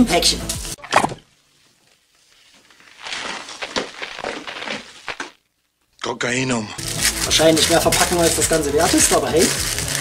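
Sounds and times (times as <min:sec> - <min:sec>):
wood cracking and crunching: 0:02.7 - 0:05.6.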